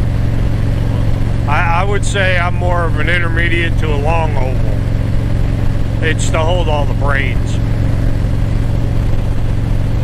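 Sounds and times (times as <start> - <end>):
motorcycle engine drone: 0.0 - 10.0
wind and road rush: 0.0 - 10.0.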